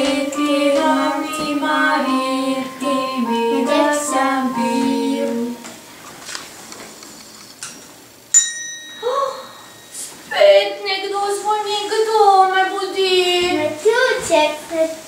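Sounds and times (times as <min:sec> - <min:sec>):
girl singing alone: 0:00.0 - 0:05.7
bright bell ding: 0:08.3 - 0:10.1.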